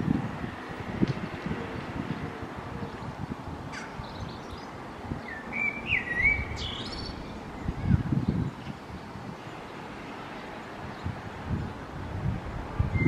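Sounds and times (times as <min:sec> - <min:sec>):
outdoor background noise: 0:00.0 - 0:13.0
bird whistling song: 0:03.8 - 0:07.7.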